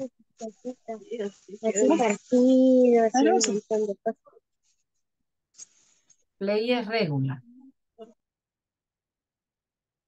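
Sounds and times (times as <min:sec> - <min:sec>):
person's voice: 0:00.0 - 0:04.2.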